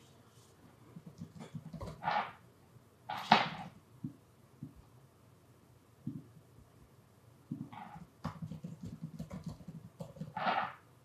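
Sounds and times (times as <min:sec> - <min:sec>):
laptop keyboard keys clicking: 0:08.2 - 0:10.4.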